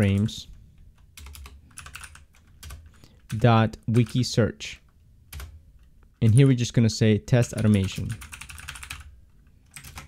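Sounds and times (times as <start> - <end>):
computer keyboard typing: 1.1 - 4.2, 5.3 - 5.6, 6.2 - 6.5, 7.4 - 10.0.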